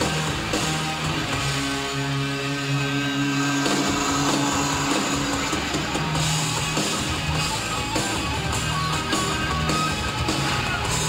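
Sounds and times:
distorted electric guitar droning: 0.0 - 11.0
drums and guitar riffing: 0.0 - 11.0.

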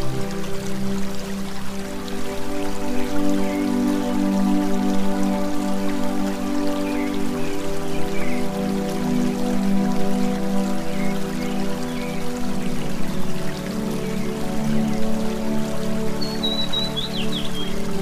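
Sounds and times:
rain-like water sound: 0.0 - 18.0.

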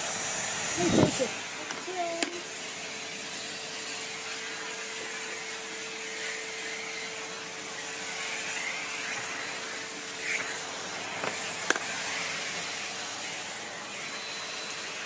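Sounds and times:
vacuum cleaner running: 0.0 - 15.0.

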